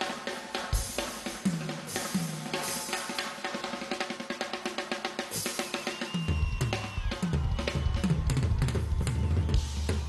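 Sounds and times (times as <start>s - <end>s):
drum kit playing: 0.0s - 10.0s.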